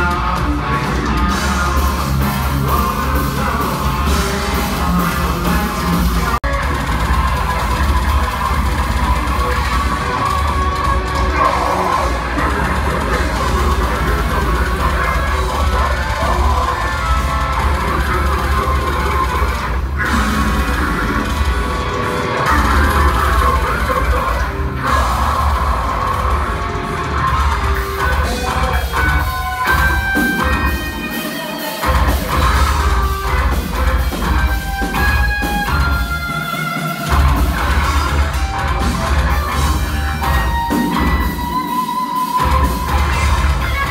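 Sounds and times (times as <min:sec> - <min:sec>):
harsh vocals: 0:00.0 - 0:36.0
distorted guitars: 0:00.0 - 0:43.9
pounding drums: 0:00.0 - 0:43.9.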